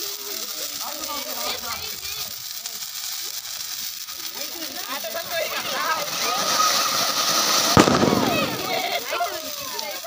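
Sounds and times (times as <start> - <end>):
fireworks hissing: 0.0 - 10.0
children's voices: 4.3 - 10.0
firecracker bang: 5.9 - 9.2.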